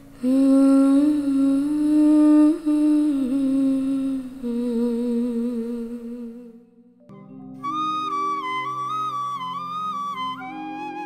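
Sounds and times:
soft background music: 0.0 - 11.0
person humming: 0.2 - 6.7.

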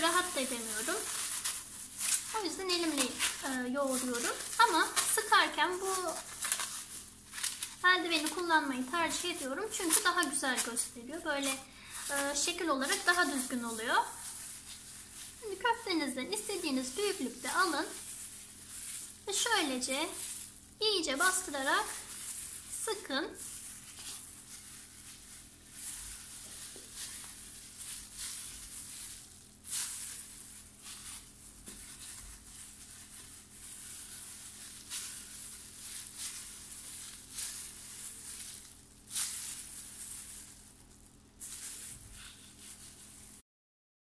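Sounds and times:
plastic glove crinkling: 0.0 - 43.4.

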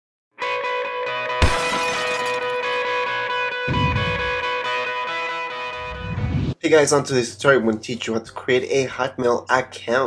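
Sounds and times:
glass shattering crash: 1.4 - 2.8
held music tone: 3.7 - 5.0.

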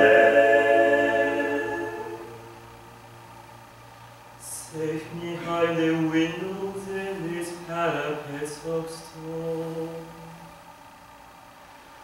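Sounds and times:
male vocal quartet singing: 0.0 - 2.6, 4.4 - 10.5.

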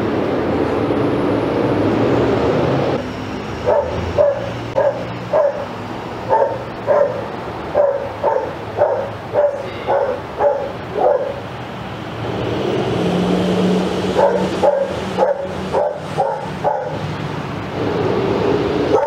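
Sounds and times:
dog barking: 3.6 - 5.7, 6.3 - 11.4, 14.2 - 17.0.

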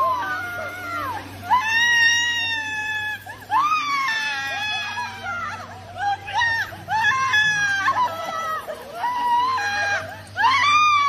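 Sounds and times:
woman screaming and wailing: 0.0 - 11.0.

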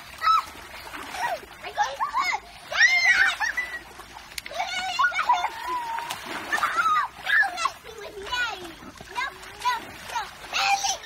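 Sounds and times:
children squealing: 2.7 - 3.9, 4.5 - 7.5.

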